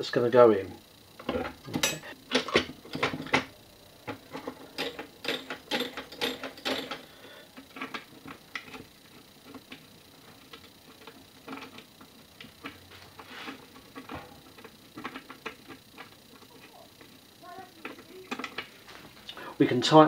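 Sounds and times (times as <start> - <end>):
steel parts clicking and clinking: 1.2 - 3.5, 4.1 - 8.8.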